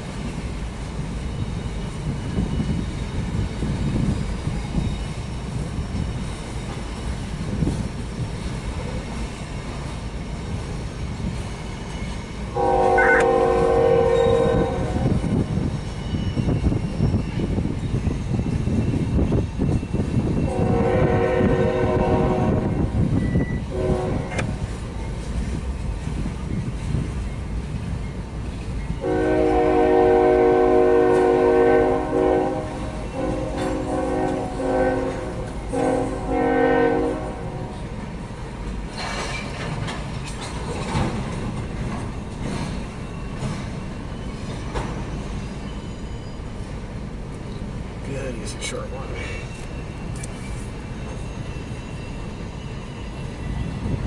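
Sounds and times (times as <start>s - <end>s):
freight train cars rumbling: 0.0s - 54.0s
locomotive chime horn: 12.6s - 15.2s, 20.5s - 24.4s, 29.0s - 37.8s.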